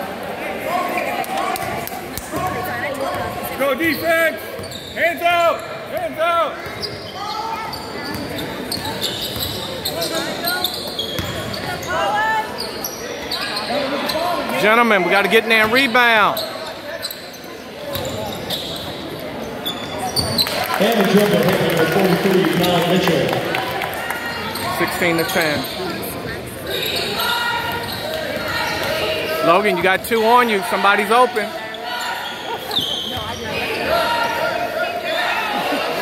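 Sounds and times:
sneaker squeaks: 1.6s - 14.6s, 15.5s - 20.8s, 24.2s - 34.2s
short high shoe squeak: 6.7s - 11.8s, 16.4s - 20.6s.

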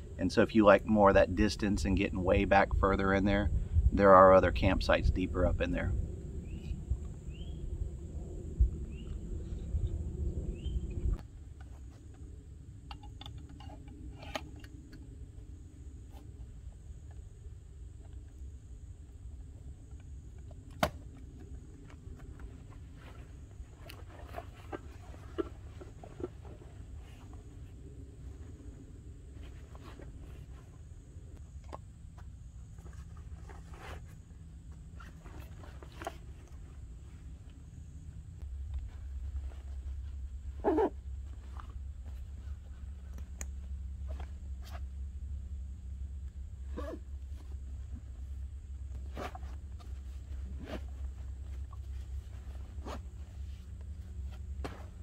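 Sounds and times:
low rumble: 3.3s - 11.6s
nylon fabric rustling: 46.6s - 55.0s.

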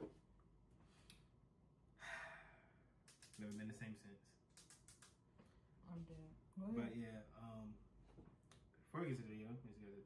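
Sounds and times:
person exhaling: 2.0s - 2.8s.

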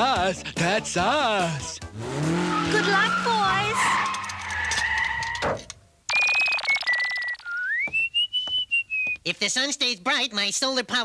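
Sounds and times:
warbling whistle-like cartoon tone: 6.1s - 9.2s.

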